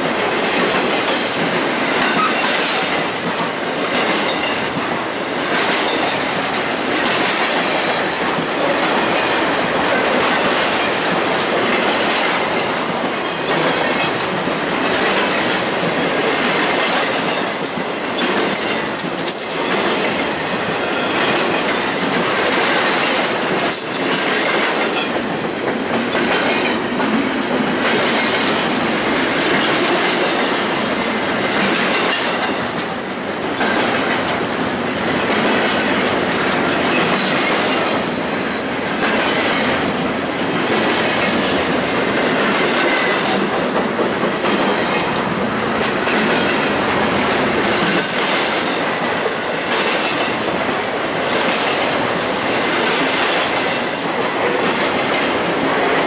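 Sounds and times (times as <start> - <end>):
freight train wheels on rails: 0.0 - 56.0.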